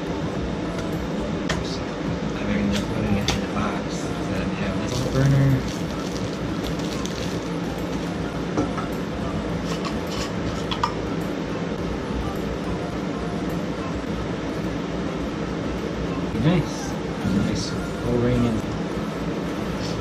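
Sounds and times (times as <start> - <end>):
steady background hum: 0.0 - 20.0
plastic wrapping crinkling: 4.9 - 8.2.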